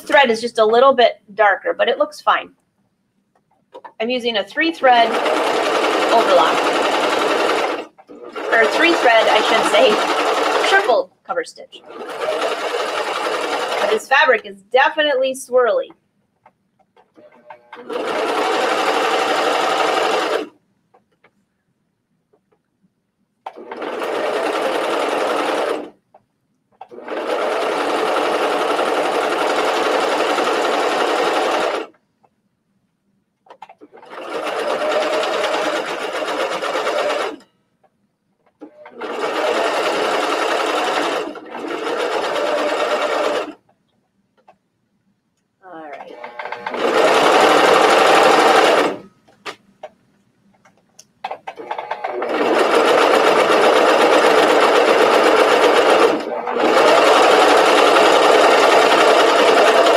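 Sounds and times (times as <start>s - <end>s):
sewing machine stitching: 4.8s - 11.1s, 11.8s - 14.4s, 17.1s - 20.6s, 23.4s - 26.0s, 26.8s - 32.0s, 33.5s - 37.5s, 38.6s - 43.6s, 45.8s - 49.1s, 51.2s - 59.9s.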